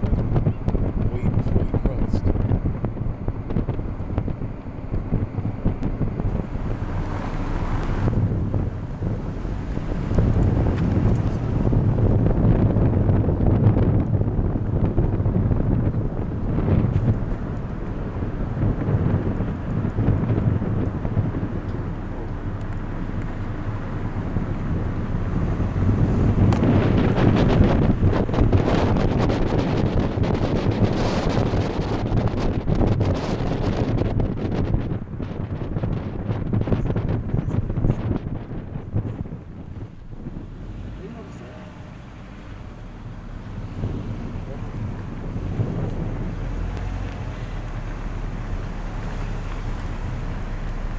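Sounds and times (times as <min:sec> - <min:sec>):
wind buffeting microphone: 0:00.0 - 0:50.9.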